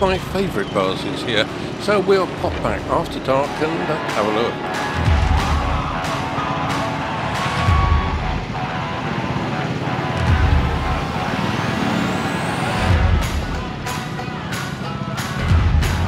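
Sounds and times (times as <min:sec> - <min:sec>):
background music: 0:00.0 - 0:16.0
motorbike engine and road noise: 0:00.0 - 0:16.0
low thumps: 0:01.6 - 0:11.3
rising whine: 0:02.0 - 0:14.2.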